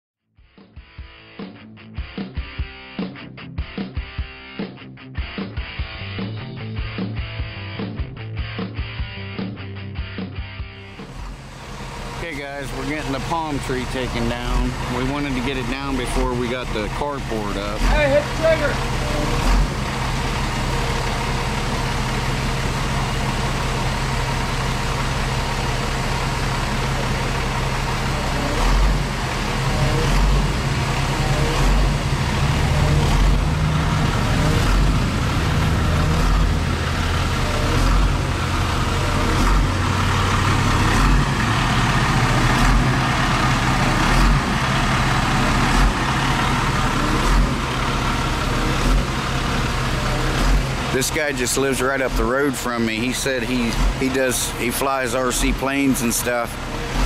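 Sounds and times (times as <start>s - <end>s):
truck engine running: 5.2s - 57.0s.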